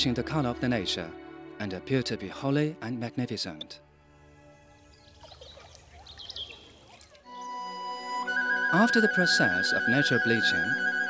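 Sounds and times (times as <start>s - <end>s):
running water: 4.7s - 7.4s
bird chirps: 4.9s - 7.1s.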